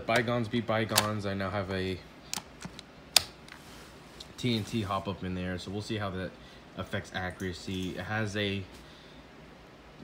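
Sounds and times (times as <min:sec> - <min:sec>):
handling clicks: 0:00.9 - 0:01.2.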